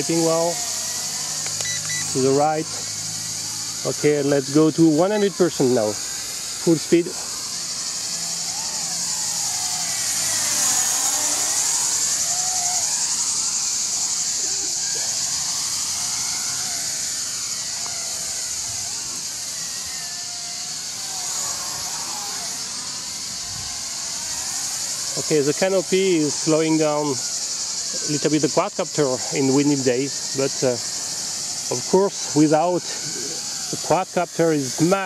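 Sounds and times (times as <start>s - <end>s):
quadcopter propeller buzz: 0.0s - 35.0s.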